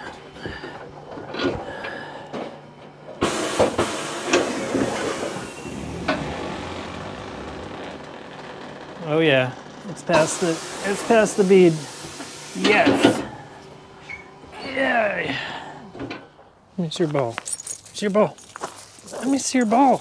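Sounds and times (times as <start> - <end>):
tire changer machine scraping: 3.2 - 12.5.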